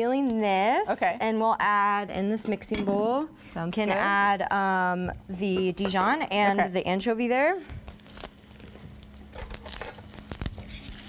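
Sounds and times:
garlic skin crinkling: 7.7s - 11.0s.

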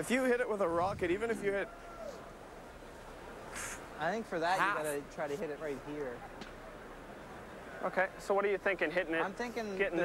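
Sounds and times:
faint arena background noise: 0.0s - 10.0s
short breathy hiss: 3.5s - 3.9s.

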